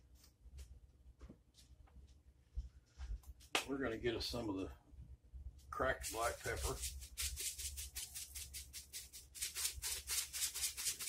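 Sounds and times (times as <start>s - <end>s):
pepper rattling in shaker jar: 6.0s - 11.0s.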